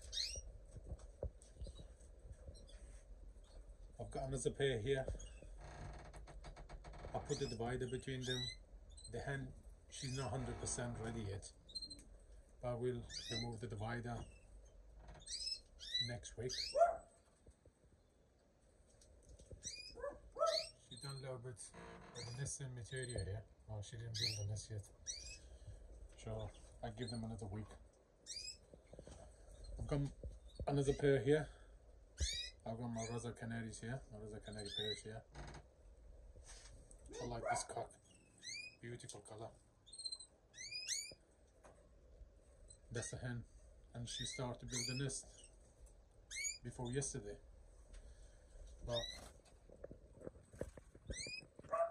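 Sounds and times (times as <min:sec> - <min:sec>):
canary chirping: 0:00.0 - 0:00.5, 0:02.5 - 0:03.7, 0:05.1 - 0:06.1, 0:06.8 - 0:12.2, 0:12.9 - 0:17.0, 0:19.5 - 0:23.4, 0:24.0 - 0:25.6, 0:28.2 - 0:31.2, 0:32.2 - 0:33.3, 0:34.4 - 0:35.6, 0:37.1 - 0:38.9, 0:39.8 - 0:41.3, 0:44.0 - 0:47.2, 0:48.8 - 0:49.3, 0:51.0 - 0:51.9.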